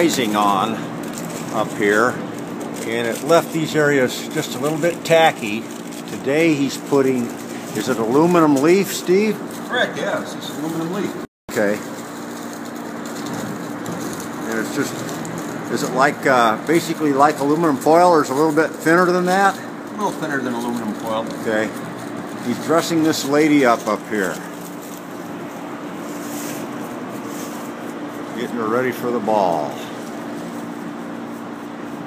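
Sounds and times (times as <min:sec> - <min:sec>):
low mechanical hum: 0:00.0 - 0:32.0.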